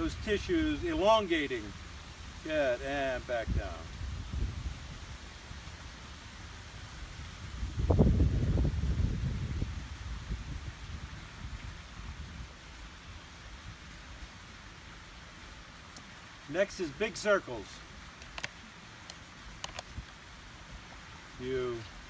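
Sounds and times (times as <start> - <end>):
person speaking: 0.0 - 1.8, 2.4 - 3.9, 16.5 - 18.4
wind rumble on microphone: 3.4 - 14.0.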